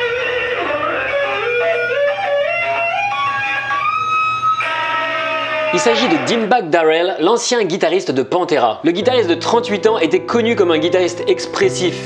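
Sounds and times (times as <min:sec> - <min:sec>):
electric guitar lead line: 0:00.0 - 0:06.7.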